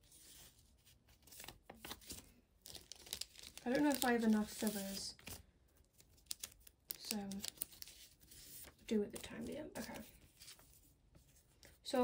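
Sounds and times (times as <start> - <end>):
paper cards rustling and scraping: 0.0 - 11.8.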